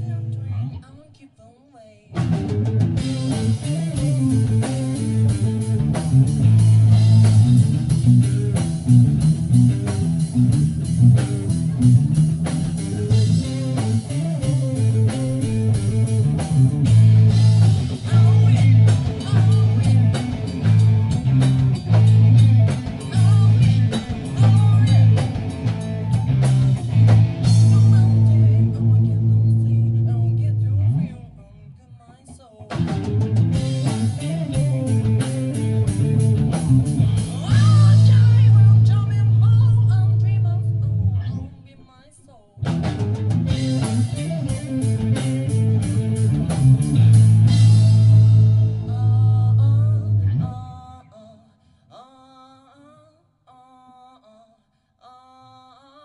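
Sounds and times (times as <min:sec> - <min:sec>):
pulsing bass line: 0:00.0 - 0:00.8, 0:02.2 - 0:31.6, 0:32.7 - 0:41.6, 0:42.7 - 0:50.7
drum kit: 0:02.1 - 0:30.5, 0:32.6 - 0:40.2, 0:42.6 - 0:49.4
electric guitar: 0:02.1 - 0:31.8, 0:32.6 - 0:41.7, 0:42.6 - 0:51.2.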